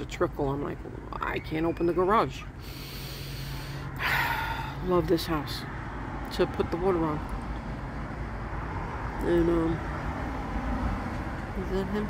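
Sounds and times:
woman gasping: 0:02.6 - 0:04.8.

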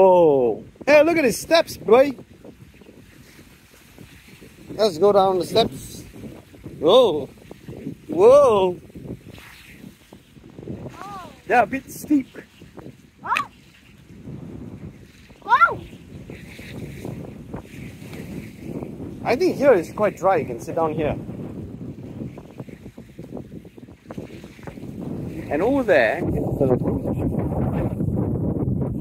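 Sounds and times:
wind rumble on microphone: 0:00.0 - 0:29.0
waves washing against rocks: 0:10.8 - 0:13.6.

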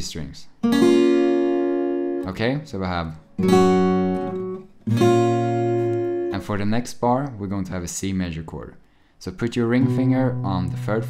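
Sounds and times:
acoustic guitar fingerpicked chords: 0:00.6 - 0:06.8, 0:09.6 - 0:11.0.

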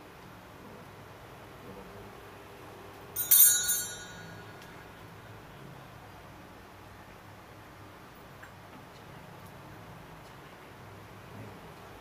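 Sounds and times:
bright metallic ring: 0:03.2 - 0:05.4.

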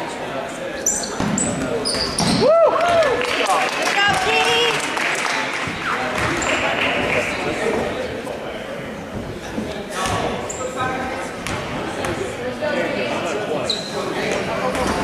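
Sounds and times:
spectators chattering: 0:00.0 - 0:15.0.

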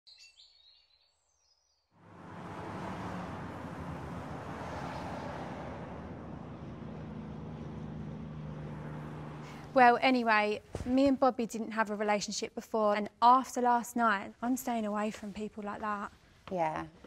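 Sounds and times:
distant traffic: 0:02.0 - 0:11.4.

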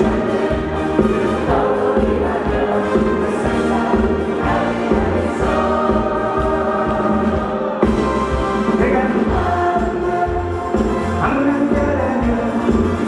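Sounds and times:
voices singing together: 0:00.0 - 0:11.0
live band playing: 0:00.0 - 0:13.0
steady bass: 0:00.0 - 0:13.0.

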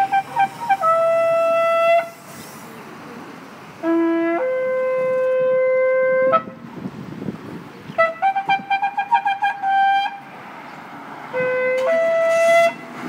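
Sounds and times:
shofar blast: 0:00.0 - 0:02.3, 0:03.8 - 0:06.6, 0:11.4 - 0:12.9.

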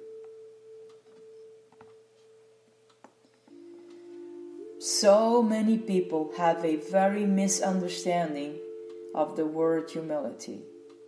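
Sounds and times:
soft held background music note: 0:00.0 - 0:11.0
sermon speech: 0:04.8 - 0:08.6, 0:09.2 - 0:10.7.

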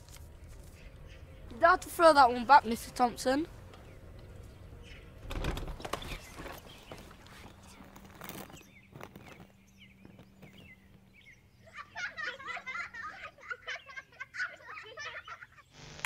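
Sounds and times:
birds chirping: 0:00.0 - 0:15.8.

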